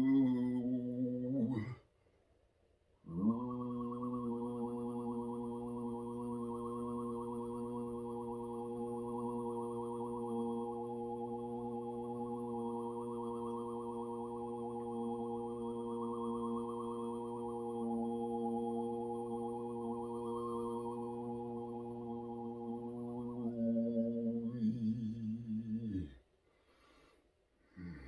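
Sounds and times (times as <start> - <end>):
low drone tone: 3.1 - 26.1.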